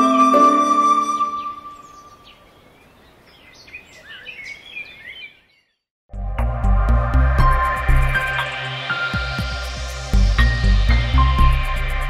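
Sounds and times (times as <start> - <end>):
music: 0.0 - 1.8, 6.1 - 12.0
faint outdoor ambience: 0.0 - 5.4
birds chirping: 0.0 - 5.8.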